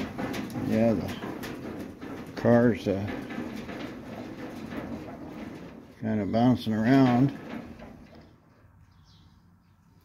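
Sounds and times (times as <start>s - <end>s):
car body creaking and knocking: 0.0s - 8.4s.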